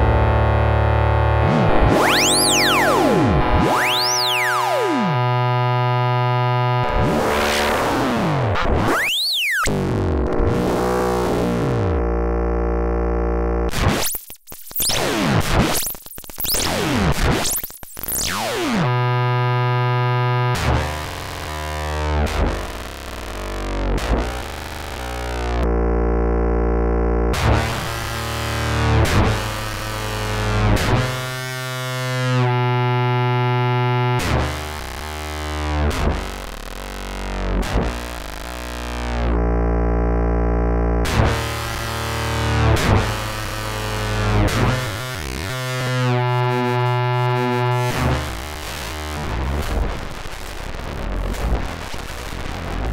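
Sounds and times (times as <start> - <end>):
synthesizer notes: 0.0 - 13.7, 25.6 - 29.1, 39.1 - 48.8.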